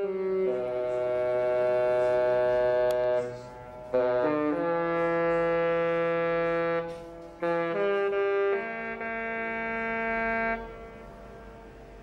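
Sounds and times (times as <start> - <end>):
ship's horn: 0.0 - 12.0.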